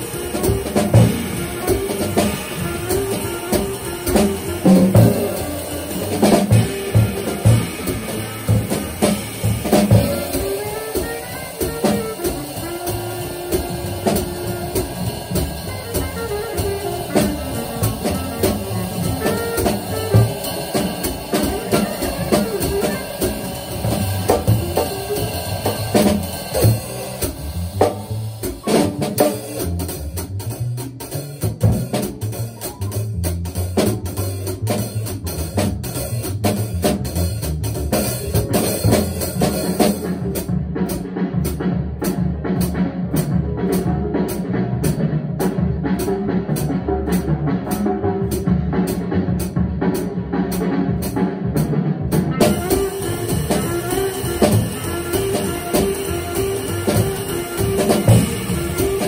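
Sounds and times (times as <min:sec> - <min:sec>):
jazz drum kit playing: 0:00.0 - 0:59.0
recorded jazz tune from speaker: 0:00.0 - 0:59.0.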